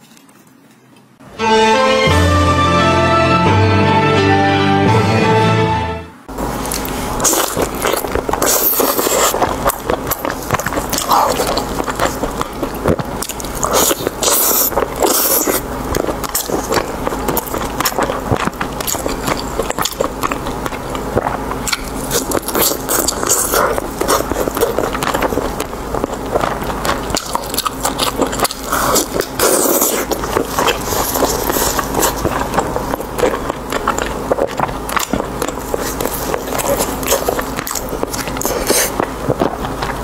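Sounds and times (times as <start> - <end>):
person chewing: 6.3 - 40.0.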